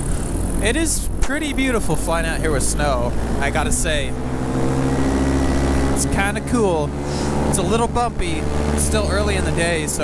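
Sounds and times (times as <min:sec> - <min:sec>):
paramotor engine droning: 0:00.0 - 0:10.0.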